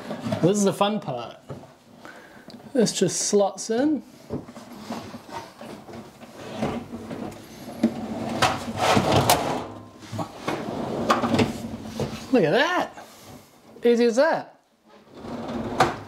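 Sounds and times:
drawer sliding scrapes: 0:04.7 - 0:12.3, 0:15.0 - 0:16.0.

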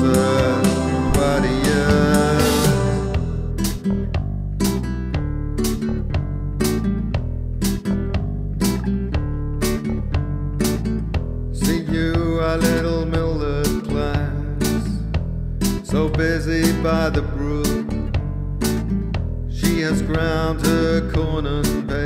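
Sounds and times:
nylon-string guitar strumming chords: 0:00.0 - 0:22.0.

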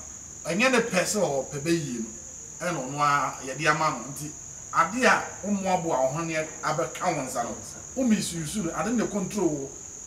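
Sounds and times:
man talking: 0:00.5 - 0:09.8.

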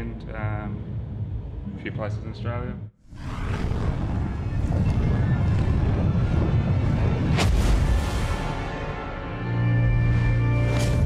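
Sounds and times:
dense low rumble: 0:03.1 - 0:08.7
deep boom: 0:03.1 - 0:08.9
cinematic music: 0:03.3 - 0:11.0.

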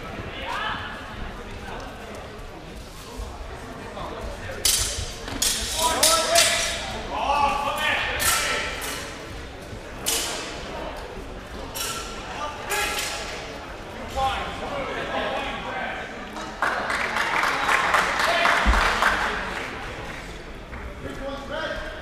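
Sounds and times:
swords clashing: 0:04.6 - 0:06.9, 0:08.2 - 0:09.2, 0:10.0 - 0:10.6.

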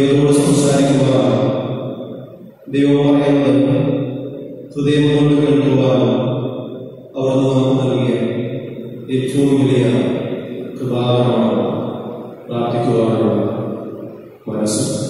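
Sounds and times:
man chanting prayers: 0:00.0 - 0:01.7, 0:02.7 - 0:06.4, 0:07.2 - 0:13.8, 0:14.4 - 0:15.0.

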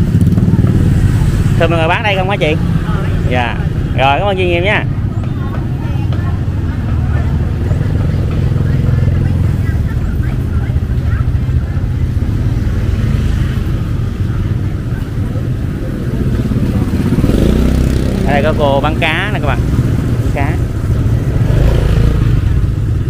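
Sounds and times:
faint voices chattering: 0:00.0 - 0:23.0
motorbike traffic rumble: 0:00.0 - 0:23.0.

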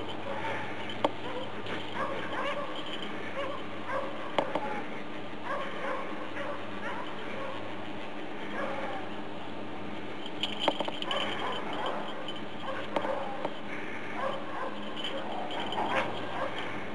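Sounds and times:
dog barking and whining: 0:00.1 - 0:07.8, 0:08.4 - 0:09.2, 0:11.0 - 0:13.4, 0:14.2 - 0:16.7.

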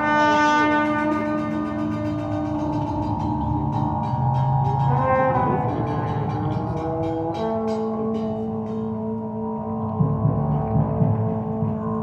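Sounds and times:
drums: 0:00.0 - 0:12.0
trombone long note: 0:00.0 - 0:12.0.

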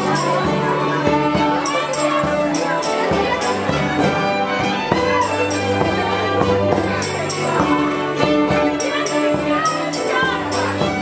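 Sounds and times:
crowd voices: 0:00.0 - 0:11.0
sharp high percussion strikes: 0:00.0 - 0:11.0
traditional dance music: 0:00.0 - 0:11.0.

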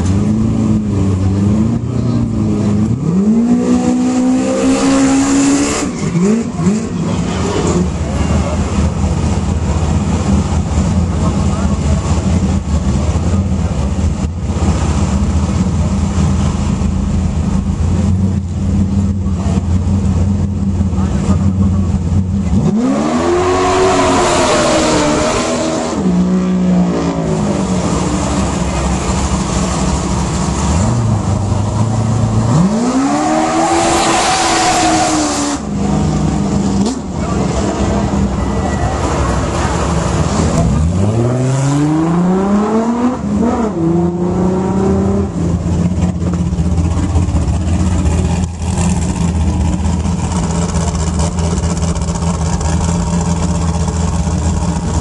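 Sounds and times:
buggy engines idling: 0:00.0 - 0:03.5, 0:06.0 - 0:22.8, 0:25.9 - 0:32.8, 0:34.9 - 0:41.4, 0:45.0 - 0:55.0
engine revving: 0:00.0 - 0:08.8, 0:21.0 - 0:55.0.

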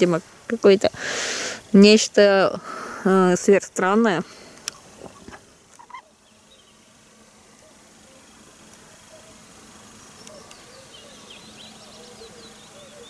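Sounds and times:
distant birds calling: 0:04.2 - 0:13.0.

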